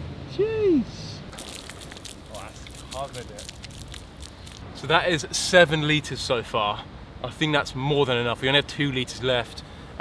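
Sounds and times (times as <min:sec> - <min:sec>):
person exclaiming: 0:00.3 - 0:01.2
water splashing on stone: 0:01.3 - 0:04.7.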